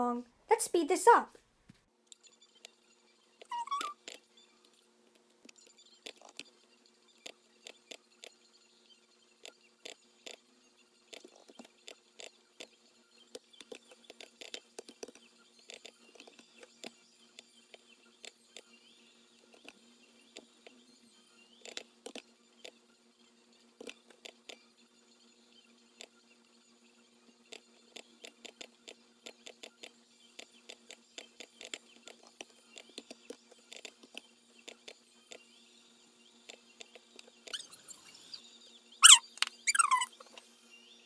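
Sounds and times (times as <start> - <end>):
low electrical hum: 0.0 - 41.0
high squeak: 3.5 - 4.0, 37.5 - 38.1, 39.0 - 40.2.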